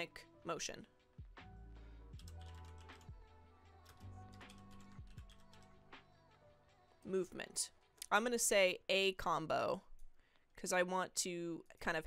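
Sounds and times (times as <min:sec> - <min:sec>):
quiet background music: 0:00.0 - 0:12.0
keyboard typing: 0:02.2 - 0:03.2, 0:03.8 - 0:05.7.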